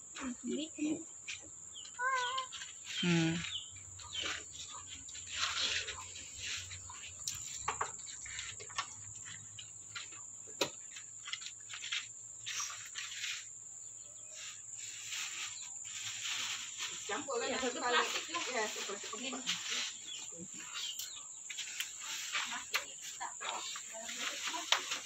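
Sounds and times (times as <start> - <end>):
insects droning: 0.0 - 25.0.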